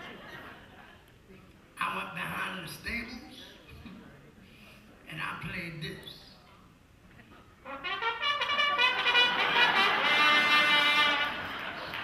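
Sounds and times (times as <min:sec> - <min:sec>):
trumpet playing: 0:07.6 - 0:11.8.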